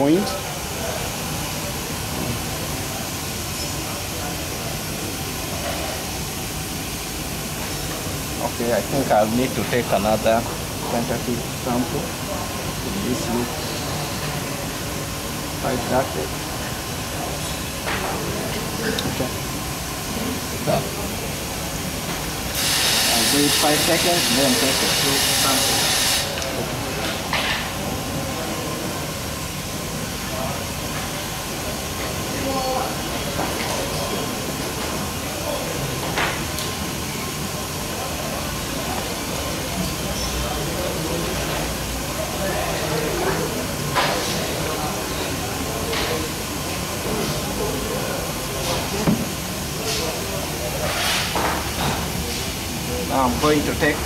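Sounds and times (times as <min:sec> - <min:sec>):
hiss of running liquid: 0:22.5 - 0:26.4.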